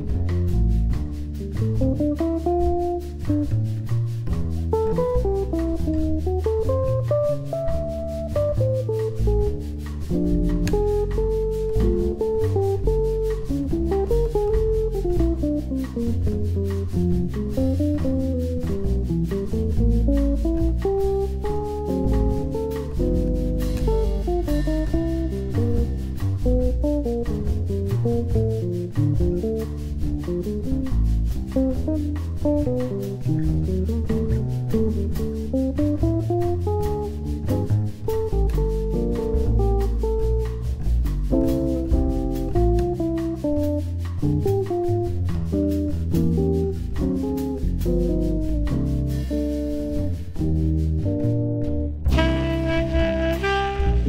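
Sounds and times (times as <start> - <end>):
bass line: 0.0 - 54.0
drum kit: 0.0 - 54.0
plucked guitar-like lead: 0.0 - 54.0.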